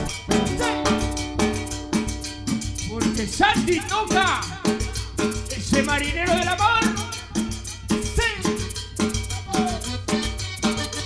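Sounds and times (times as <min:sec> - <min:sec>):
drum and percussion beat: 0:00.0 - 0:11.0
live band playing: 0:00.0 - 0:11.0.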